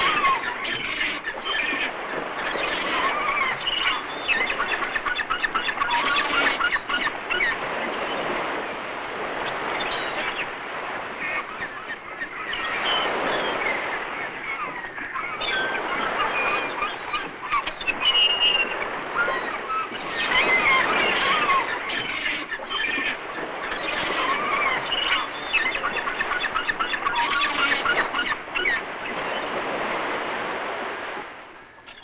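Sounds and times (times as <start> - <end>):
flock of birds chirping: 0.0 - 32.0.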